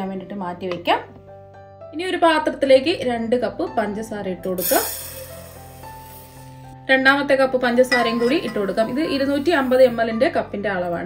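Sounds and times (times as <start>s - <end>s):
soft background music: 0.0s - 11.0s
sugar pouring into a steel pot: 4.6s - 6.8s, 7.8s - 10.0s.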